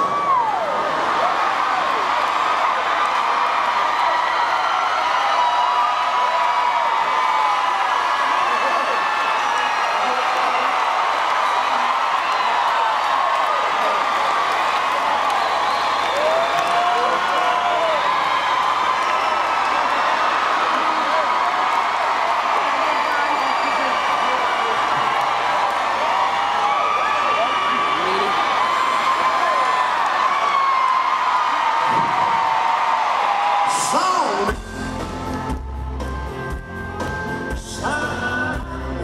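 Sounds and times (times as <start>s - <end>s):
whoops and shouts: 0.0s - 34.6s
crowd cheering: 0.0s - 39.0s.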